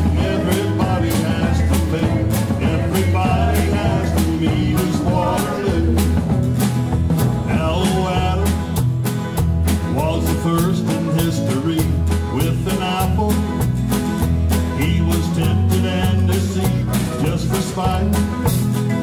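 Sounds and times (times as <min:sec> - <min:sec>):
acoustic guitar: 0:00.0 - 0:19.0
banjo: 0:00.0 - 0:19.0
drums: 0:00.0 - 0:19.0
electric bass: 0:00.0 - 0:19.0.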